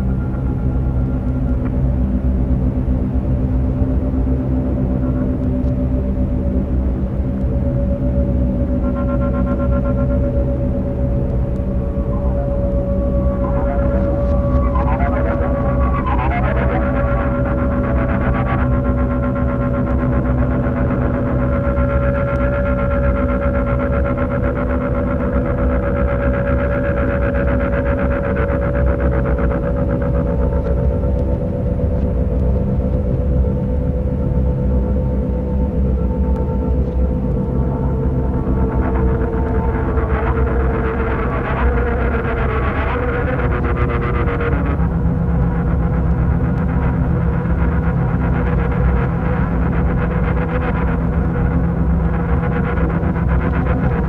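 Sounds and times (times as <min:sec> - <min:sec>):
deep low rumble: 0:00.0 - 0:54.0
heavy droning metal chords: 0:00.0 - 0:54.0.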